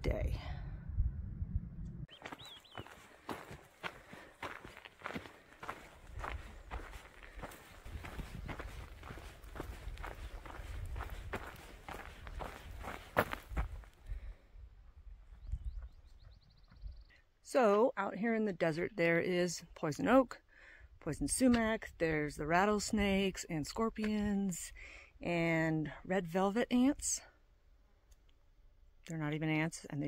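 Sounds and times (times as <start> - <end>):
low rumble: 0.0 - 2.1
footsteps on dirt trail: 2.1 - 14.4.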